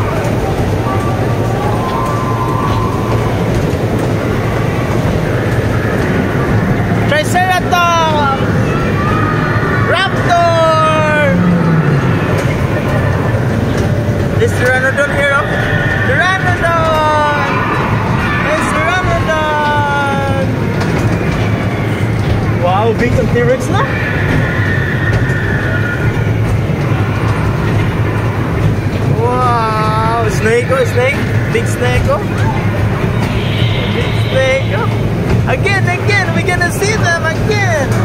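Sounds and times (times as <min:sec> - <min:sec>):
steady low rumble: 0:00.0 - 0:38.0
high-pitched squeal: 0:00.9 - 0:38.0.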